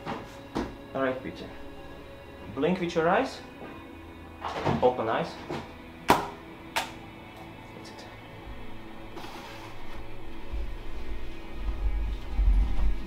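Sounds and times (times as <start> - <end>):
faint background music: 0.0 - 13.0
low rumble: 10.4 - 13.0.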